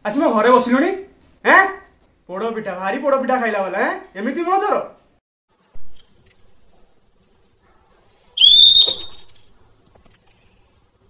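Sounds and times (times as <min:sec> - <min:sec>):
toy whistle blast: 0:08.4 - 0:09.2.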